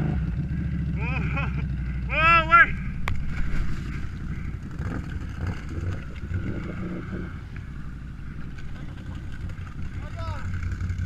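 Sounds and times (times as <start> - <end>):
quad bike engine at low revs: 0.0 - 11.0.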